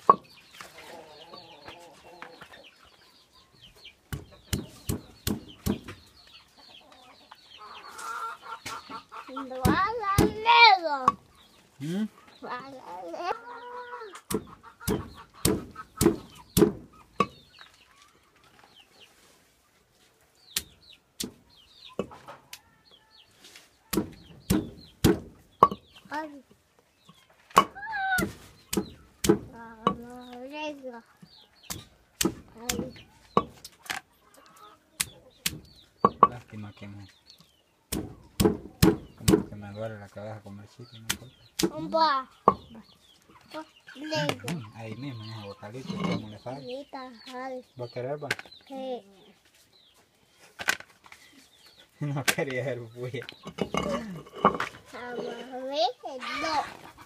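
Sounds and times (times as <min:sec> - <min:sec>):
loud cry: 0:27.7 - 0:28.3.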